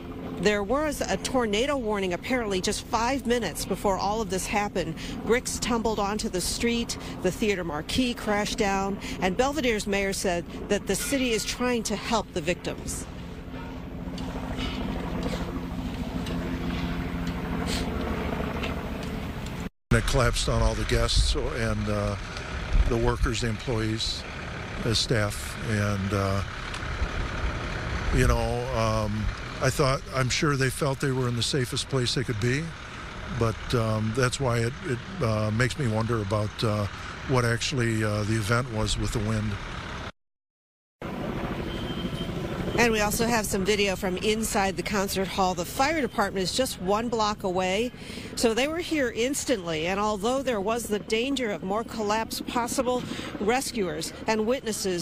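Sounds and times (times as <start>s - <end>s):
low rumbling background noise: 0.0s - 39.6s
engine drone: 0.0s - 40.1s, 41.0s - 55.0s
woman speaking: 0.4s - 13.1s, 42.8s - 55.0s.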